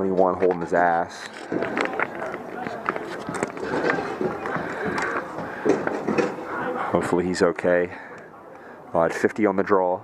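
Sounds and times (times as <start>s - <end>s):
voices talking and calling out: 0.0s - 10.0s.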